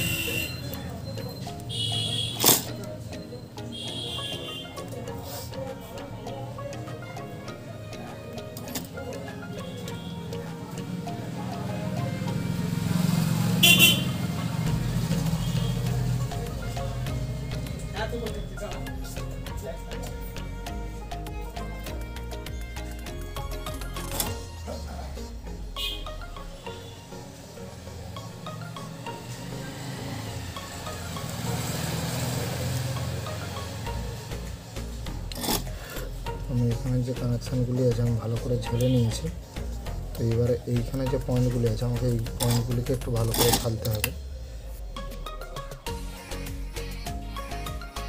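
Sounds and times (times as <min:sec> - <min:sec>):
background music: 0:00.0 - 0:48.0.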